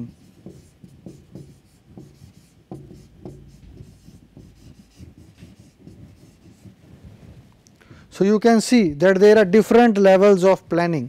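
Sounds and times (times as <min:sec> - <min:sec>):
marker writing on whiteboard: 0:00.0 - 0:07.2.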